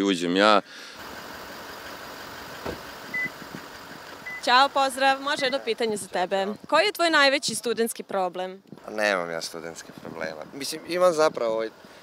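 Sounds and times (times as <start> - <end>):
traffic hum: 0.6 - 12.0
car door shutting thud: 2.6 - 3.7
remote lock beep: 3.2 - 3.4.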